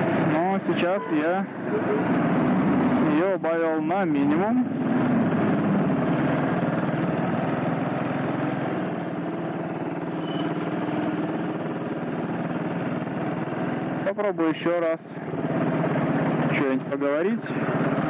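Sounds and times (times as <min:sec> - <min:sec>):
motorcycle engine running: 0:02.0 - 0:14.3, 0:15.2 - 0:18.0.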